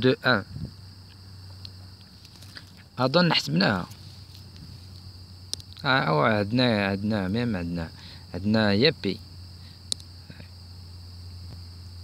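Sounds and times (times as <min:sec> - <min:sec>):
high-pitched hiss: 0:00.0 - 0:12.0
man's voice: 0:03.0 - 0:03.9, 0:05.8 - 0:09.2
faint click: 0:09.9 - 0:10.1.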